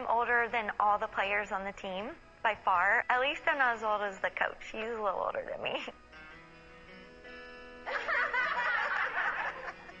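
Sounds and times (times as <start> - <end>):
background music sustained notes: 0.0 - 10.0
women laughing: 7.9 - 10.0.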